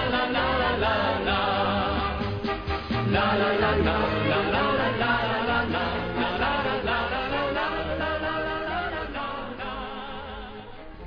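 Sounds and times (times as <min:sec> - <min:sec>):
pop song vocals with orchestra: 0:00.0 - 0:11.0.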